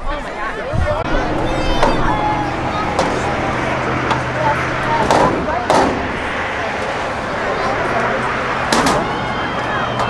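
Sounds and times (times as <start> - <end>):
distant people shouting: 0.8 - 10.0.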